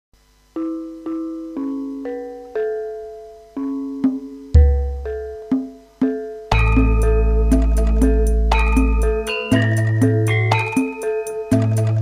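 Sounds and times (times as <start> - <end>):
gamelan metallophone notes: 0.6 - 11.2.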